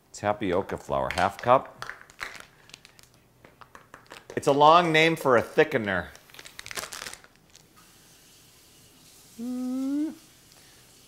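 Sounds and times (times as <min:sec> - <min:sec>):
plastic bag crinkling: 0:01.8 - 0:04.4, 0:06.1 - 0:07.7.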